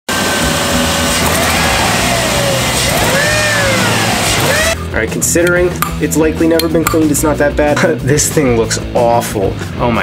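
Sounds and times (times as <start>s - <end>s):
car engine running: 0.1s - 4.8s.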